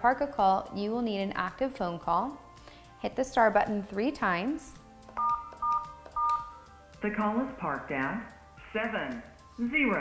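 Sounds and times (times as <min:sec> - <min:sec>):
phone keypad dual-tone beeps: 0:05.2 - 0:06.6.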